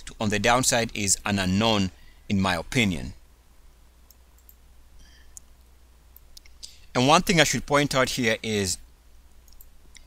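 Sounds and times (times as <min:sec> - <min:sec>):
low steady hum: 0:00.0 - 0:10.0
computer mouse clicks: 0:04.1 - 0:04.6, 0:09.4 - 0:10.0.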